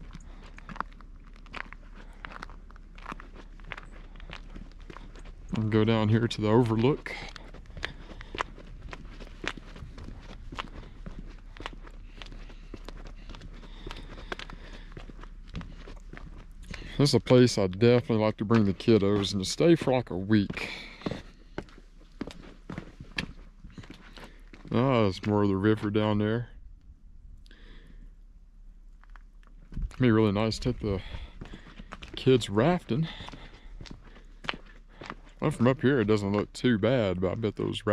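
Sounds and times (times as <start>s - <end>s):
footsteps on pavement: 0.0s - 26.4s, 28.7s - 37.9s
faint low rumble: 0.0s - 37.9s
man's voice: 5.5s - 7.4s, 16.9s - 21.0s, 24.7s - 26.5s, 29.9s - 31.3s, 32.2s - 33.3s, 35.4s - 37.9s.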